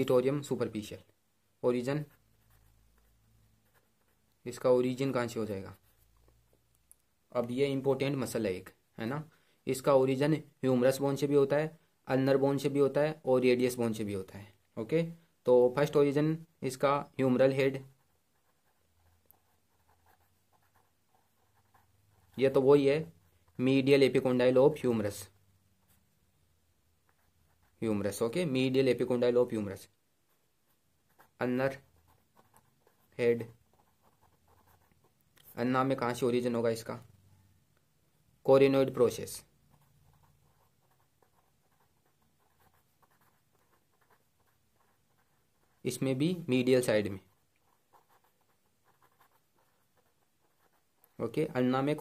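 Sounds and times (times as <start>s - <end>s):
pen scratching on paper: 2.0s - 4.2s, 17.4s - 23.9s, 27.0s - 28.3s, 30.3s - 35.6s, 39.0s - 52.0s.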